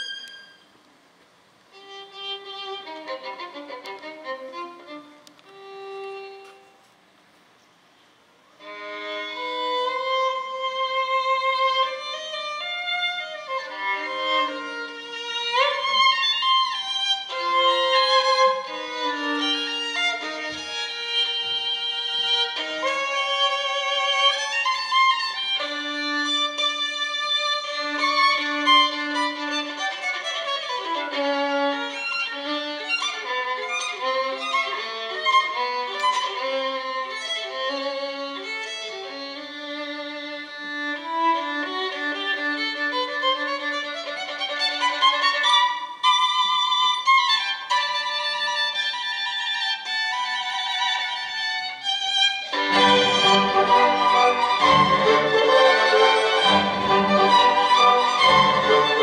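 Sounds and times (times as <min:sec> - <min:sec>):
solo violin playing: 0:00.0 - 0:00.7, 0:01.7 - 0:06.8, 0:08.6 - 0:59.0.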